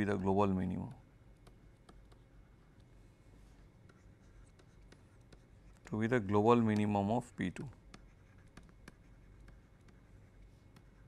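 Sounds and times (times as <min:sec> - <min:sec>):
low steady hum: 0:00.0 - 0:11.0
stylus scratching on pen tablet: 0:01.3 - 0:11.0.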